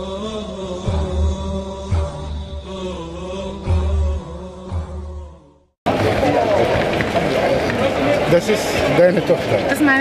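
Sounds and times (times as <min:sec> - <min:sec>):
street bustle: 0:05.9 - 0:10.0.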